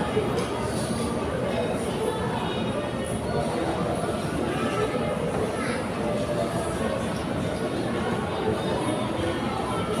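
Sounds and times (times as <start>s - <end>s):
dining hall chatter and clatter: 0.0s - 10.0s.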